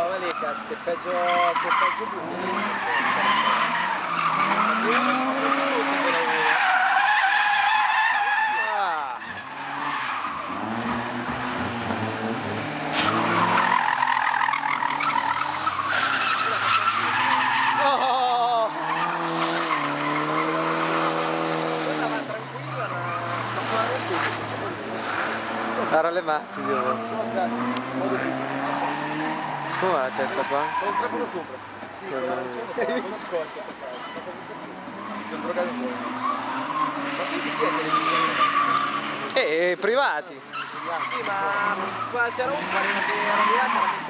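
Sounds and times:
car engine revving: 0.0s - 7.2s, 8.1s - 44.0s
tyres squealing: 0.0s - 44.0s.

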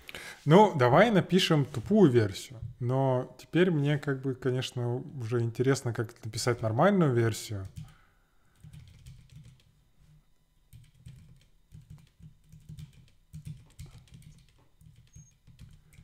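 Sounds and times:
typing on computer keyboard: 7.6s - 9.7s, 10.7s - 16.0s.

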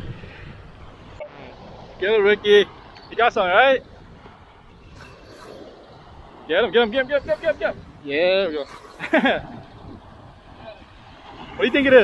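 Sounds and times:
surf breaking: 0.0s - 12.0s
wind rumble: 0.0s - 12.0s.

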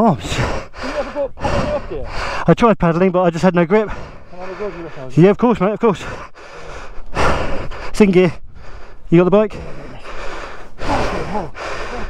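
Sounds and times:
man breathing hard: 0.1s - 2.5s, 3.8s - 5.2s, 6.0s - 12.0s.

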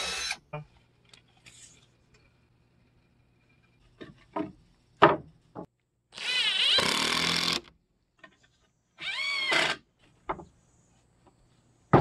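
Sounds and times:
cordless drill driving screws: 6.2s - 7.7s.

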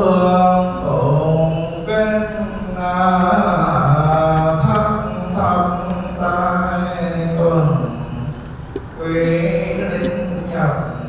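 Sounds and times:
low male voices chanting: 0.0s - 11.0s.

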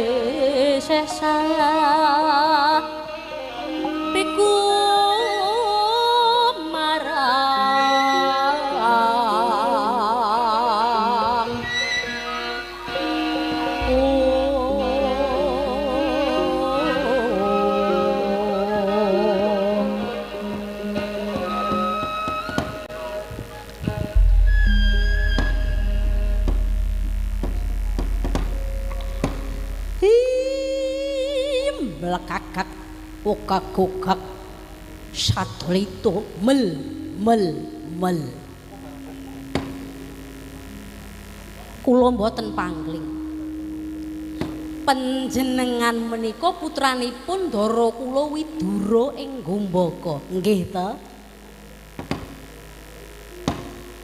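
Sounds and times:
person singing a long note: 0.0s - 11.8s, 12.9s - 22.1s, 22.8s - 40.0s, 41.8s - 51.5s
electrical mains hum: 9.2s - 54.0s
faint notes: 12.2s - 54.0s.

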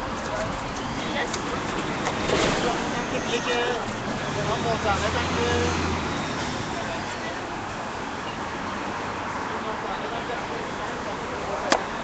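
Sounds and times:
street traffic: 0.0s - 12.0s
people talking: 0.2s - 5.8s, 9.5s - 12.0s.

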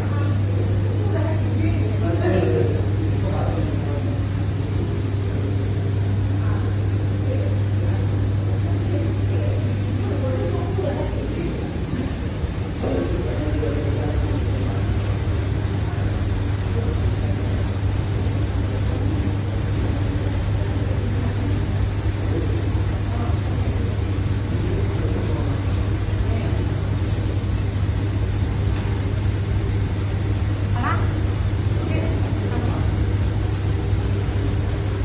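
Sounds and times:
spray booth machine hum: 0.0s - 35.0s.

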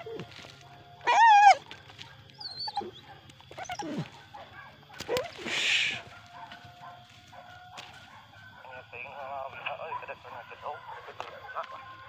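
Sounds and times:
dogs yelping and barking: 0.0s - 12.0s.

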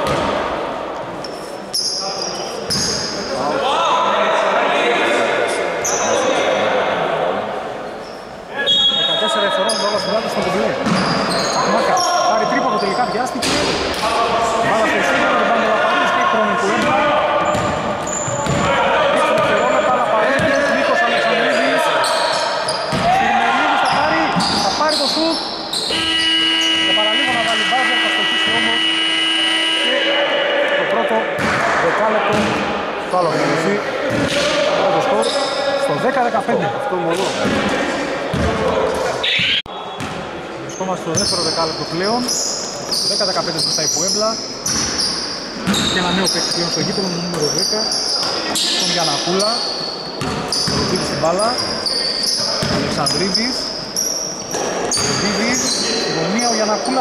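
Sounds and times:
sneaker squeaks: 1.2s - 3.5s, 5.8s - 6.3s, 7.9s - 14.0s, 16.2s - 29.8s, 35.0s - 35.9s, 38.3s - 57.0s
basketball bouncing on court: 10.8s - 11.5s, 16.8s - 18.8s, 20.4s - 20.6s, 22.9s - 23.2s, 38.3s - 38.6s, 39.2s - 40.2s, 44.6s - 45.0s, 50.2s - 51.0s, 52.6s - 52.9s
players shouting: 11.0s - 36.0s.

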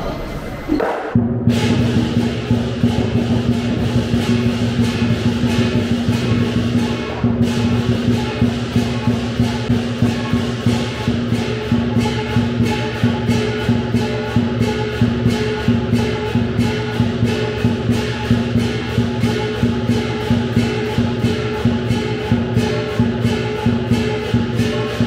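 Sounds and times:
cymbals crashing: 0.0s - 25.0s
drum beat: 0.0s - 25.0s
gong: 0.0s - 25.0s.

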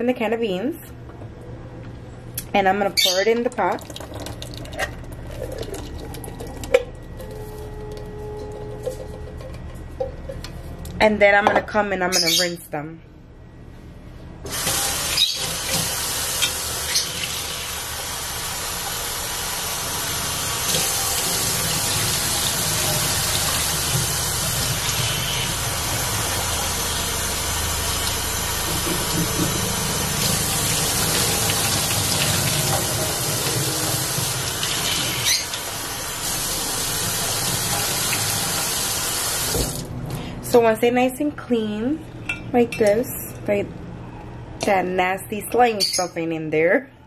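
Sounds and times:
faucet water running into pot: 3.5s - 6.5s, 14.5s - 39.8s.

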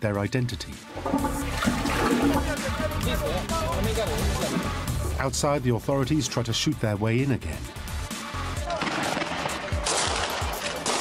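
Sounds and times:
background music: 0.0s - 11.0s
toilet flushing: 0.9s - 3.2s.

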